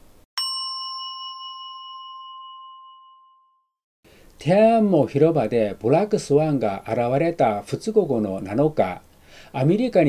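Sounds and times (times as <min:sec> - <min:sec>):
bell chime ringing: 0:00.4 - 0:03.7.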